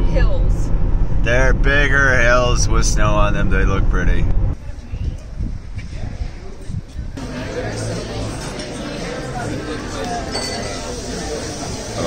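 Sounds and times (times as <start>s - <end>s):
indistinct chatter: 4.6s - 12.0s
tableware clinking: 7.4s - 11.8s.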